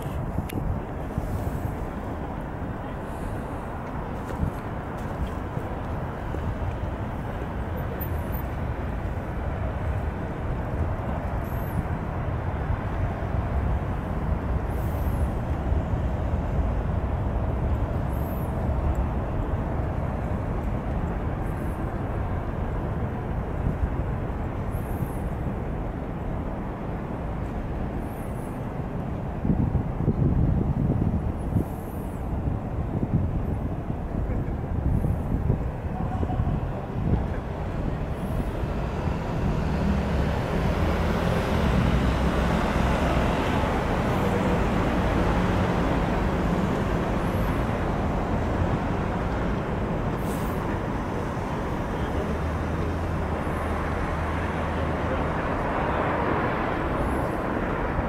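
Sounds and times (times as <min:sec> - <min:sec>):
distant city traffic rumble: 0:00.0 - 0:58.0.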